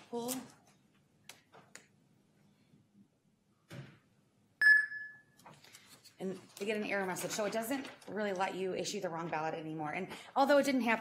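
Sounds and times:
electronic ding: 4.6s - 5.3s.

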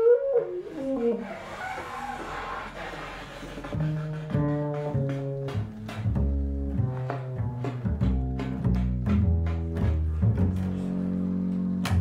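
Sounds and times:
double bass playing low notes: 0.0s - 12.0s.

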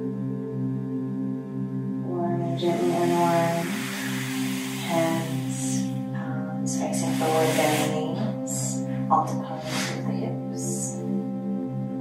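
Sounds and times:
soft background music: 0.0s - 12.0s.

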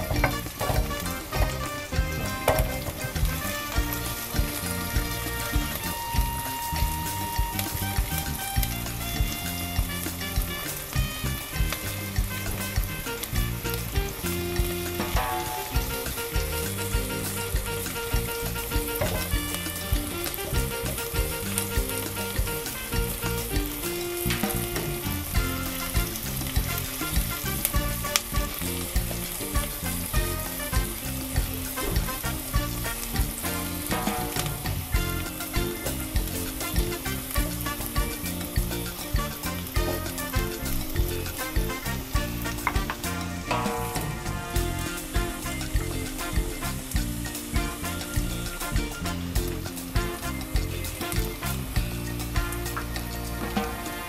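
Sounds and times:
background music with steady beat: 0.0s - 54.0s
food sizzling in hot oil: 11.8s - 54.0s.

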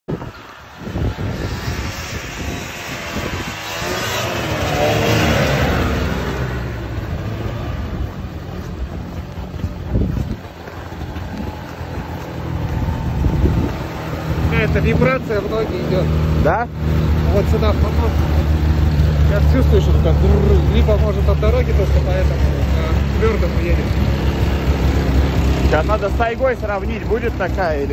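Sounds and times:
snowmobile engine passing by: 0.2s - 27.9s.

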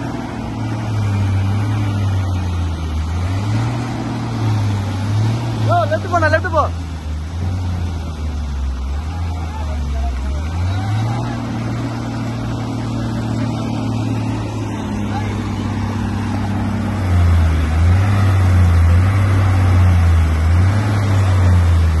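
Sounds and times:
crane diesel engines under load: 0.0s - 22.0s.

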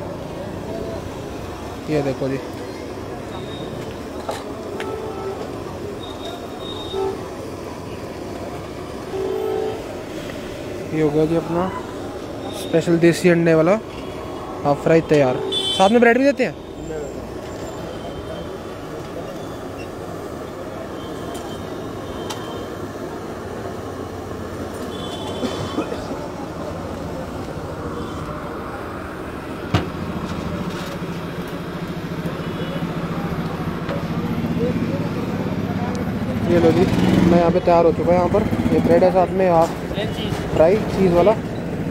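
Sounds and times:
busy street stall noise: 0.0s - 41.9s.

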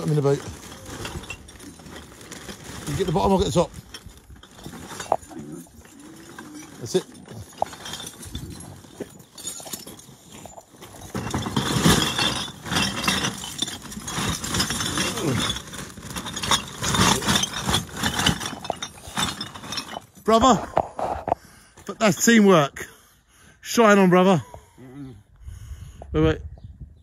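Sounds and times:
plastic bags rustling: 0.0s - 21.1s
glass bottles clinking: 0.0s - 22.3s.

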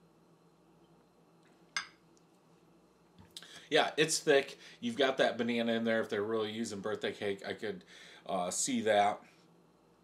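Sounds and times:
glass clinking on a counter: 1.8s - 2.0s.

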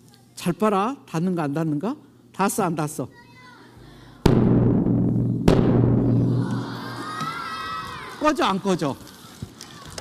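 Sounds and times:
bass drum booming hits: 4.2s - 7.2s.

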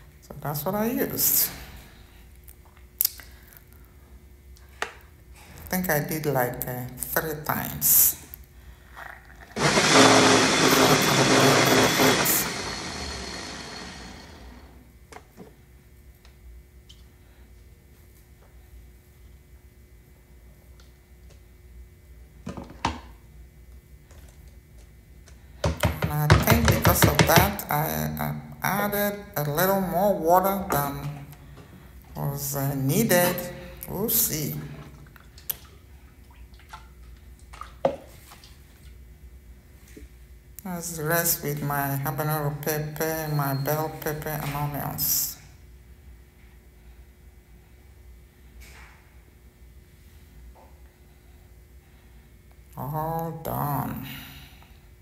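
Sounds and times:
blender motor running: 9.6s - 14.8s
plastic blender cup knocking: 25.7s - 27.6s.

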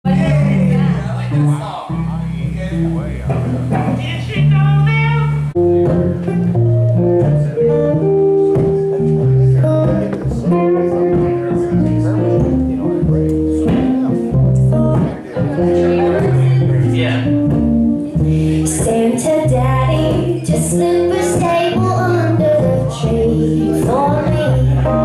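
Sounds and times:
electric guitars playing: 0.0s - 25.0s
low bass line: 0.0s - 25.0s
acoustic guitar: 0.1s - 25.0s.

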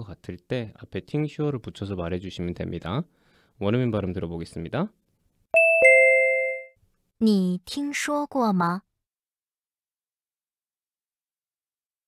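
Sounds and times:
descending ding-dong chime: 5.6s - 6.7s.

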